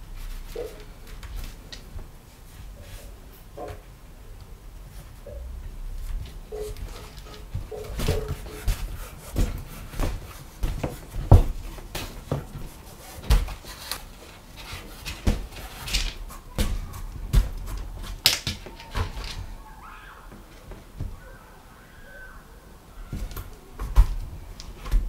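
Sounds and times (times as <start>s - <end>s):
leather stitching knocks and rustles: 6.0s - 19.4s.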